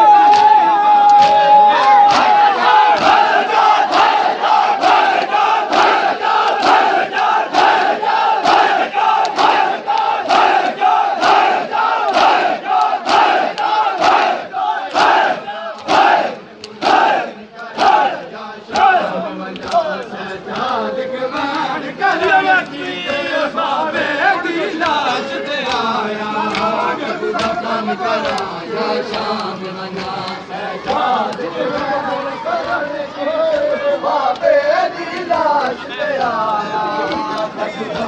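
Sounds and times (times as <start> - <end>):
group shouting: 0.0 - 19.1
men slapping chests in unison: 0.0 - 38.0.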